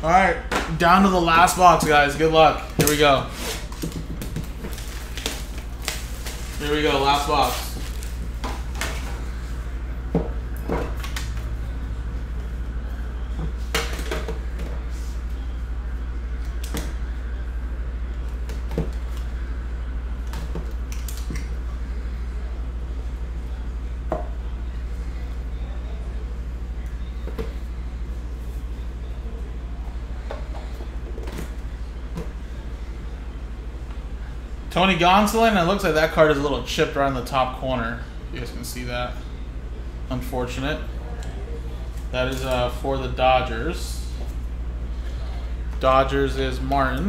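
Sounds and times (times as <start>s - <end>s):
steady low hum: 0.0s - 47.0s.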